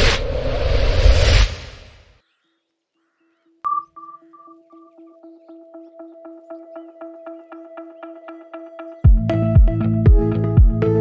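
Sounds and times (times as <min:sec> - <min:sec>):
whoosh: 0:00.0 - 0:02.1
electronic ping with echoes: 0:03.7 - 0:04.9.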